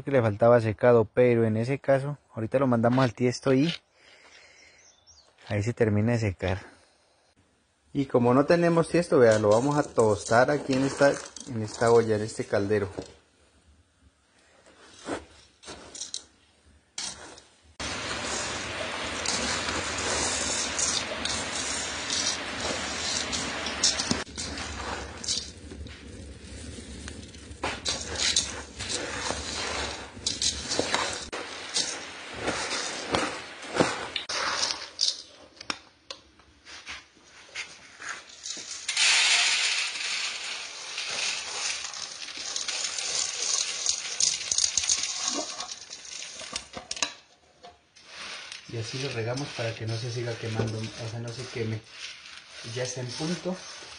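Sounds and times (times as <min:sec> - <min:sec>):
bright steady hiss: 0:04.0 - 0:35.9, 0:36.6 - 0:53.9
metal utensil stirring coffee beans: 0:08.7 - 0:13.1, 0:15.0 - 0:16.3, 0:17.0 - 0:35.4, 0:38.0 - 0:47.3, 0:48.0 - 0:53.9.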